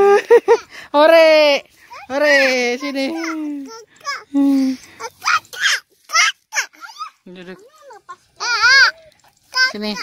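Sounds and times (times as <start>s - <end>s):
toddler squealing and babbling: 1.9s - 4.3s, 5.0s - 10.0s.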